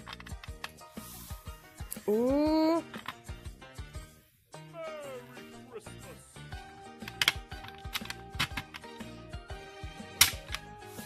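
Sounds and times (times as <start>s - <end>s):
plastic tiles clicking: 0.0s - 0.8s, 7.0s - 8.9s
background music: 0.0s - 11.0s.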